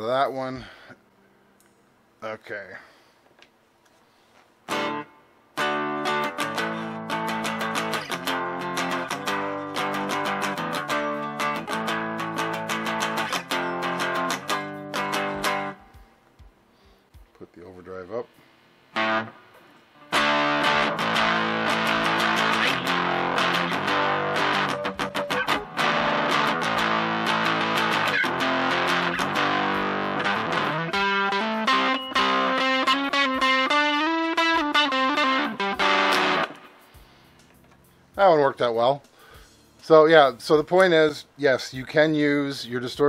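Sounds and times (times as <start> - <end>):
overdriven electric guitar riffs: 4.7 - 16.9, 18.9 - 37.9.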